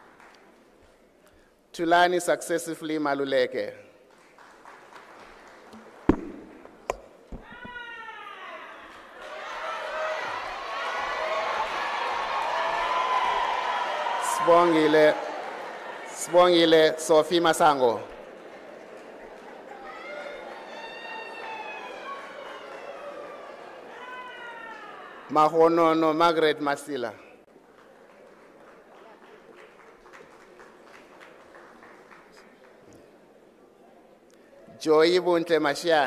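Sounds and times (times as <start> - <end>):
woman cheering cry: 7.4 - 10.5, 23.9 - 25.3.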